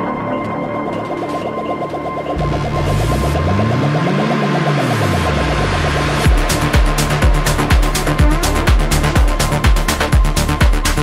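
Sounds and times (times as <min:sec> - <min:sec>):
pulsing synth pattern: 0:00.0 - 0:11.0
deep bass line: 0:02.0 - 0:11.0
rising and falling pitch sweep: 0:02.3 - 0:11.0.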